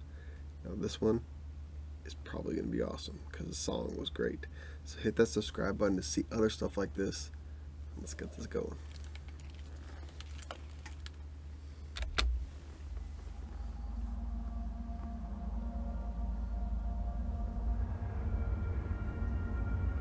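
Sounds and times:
headphones clicking: 8.8s - 11.3s, 11.9s - 13.1s
low wind rumble: 8.8s - 20.0s
soft music intro: 12.6s - 20.0s.

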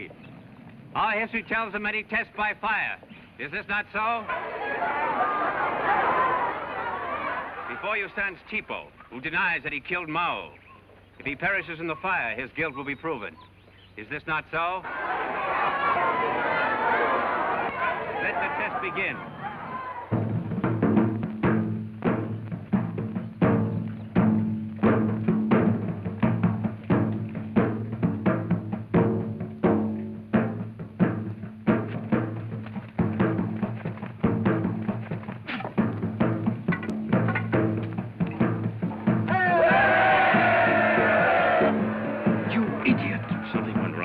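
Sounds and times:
crowd cheering: 4.0s - 8.1s, 14.8s - 20.3s, 39.2s - 44.0s
heavy fast drumming: 14.9s - 44.0s.

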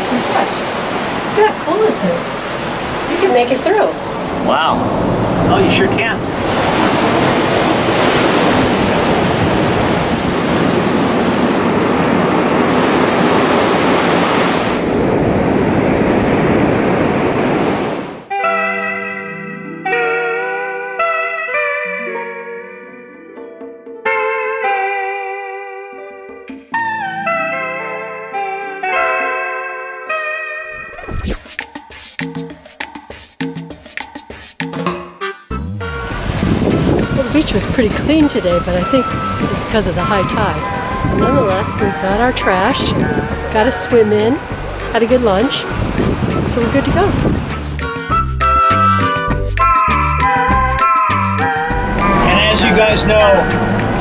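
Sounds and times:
ocean waves breaking: 0.0s - 18.3s, 35.8s - 48.2s, 50.3s - 54.0s
wind noise on microphone: 2.4s - 18.3s, 35.9s - 48.6s
guitar music: 18.3s - 31.0s, 34.8s - 54.0s.

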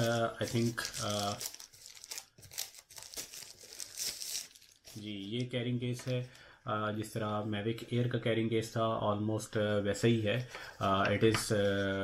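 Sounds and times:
plastic wrapping crinkling: 0.0s - 6.2s.

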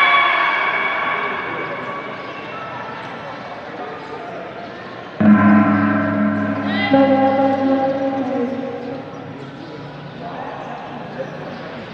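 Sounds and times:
gong ringing: 0.0s - 3.0s, 5.2s - 9.6s.

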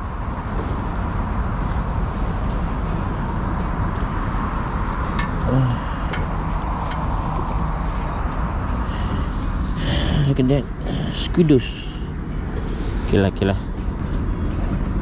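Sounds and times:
low outdoor background rumble: 0.0s - 15.0s.

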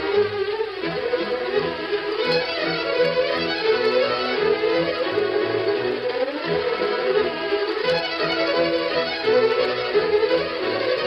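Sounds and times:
orchestral strings music: 0.0s - 11.0s.

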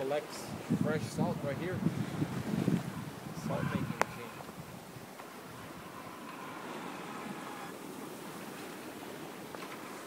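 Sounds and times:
water rushing along a hull: 0.0s - 10.0s.

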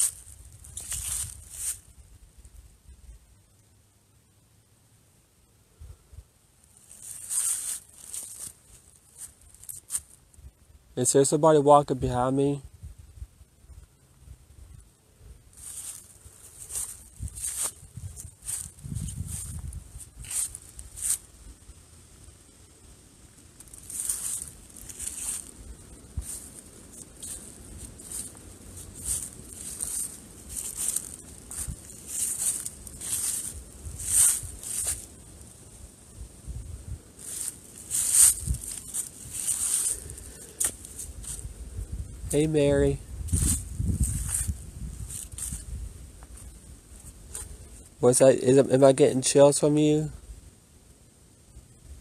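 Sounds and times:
footsteps crunching through dry grass: 0.0s - 2.0s, 6.6s - 10.3s, 15.5s - 21.7s, 23.3s - 49.1s.

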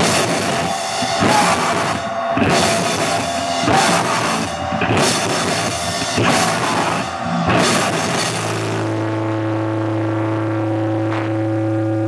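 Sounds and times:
drums: 0.0s - 12.0s
guitar and bass low drone: 0.0s - 12.0s
high guitar feedback tone: 0.0s - 12.0s.

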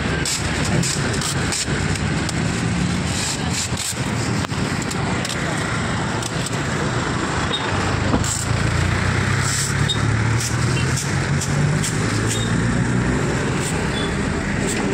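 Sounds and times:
road traffic: 0.0s - 14.9s
vehicle engine running: 0.0s - 14.9s.

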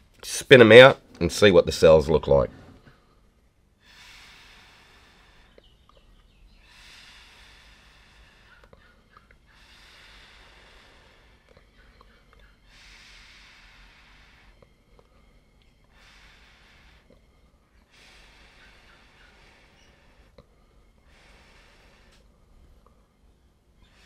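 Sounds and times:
breathy blowing through a straw: 3.8s - 5.7s, 6.5s - 8.8s.

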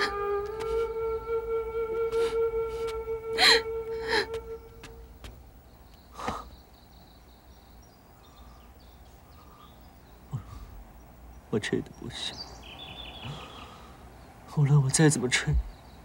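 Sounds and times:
flute long note: 0.0s - 5.1s.

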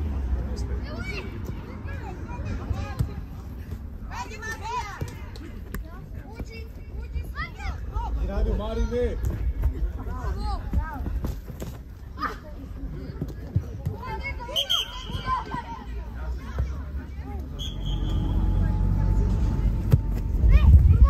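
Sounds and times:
people calling out: 14.0s - 16.2s
steady low rumble: 18.5s - 21.0s.

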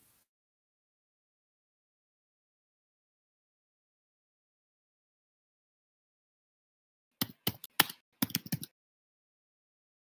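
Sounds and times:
computer keyboard typing: 7.2s - 8.7s.

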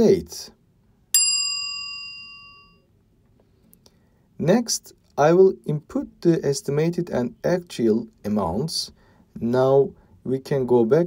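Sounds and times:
notification bell ding: 1.2s - 2.8s.

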